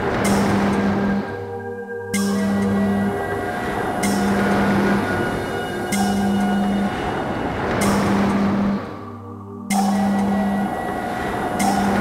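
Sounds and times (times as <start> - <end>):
rumbling electronic noise texture: 0.0 - 12.0.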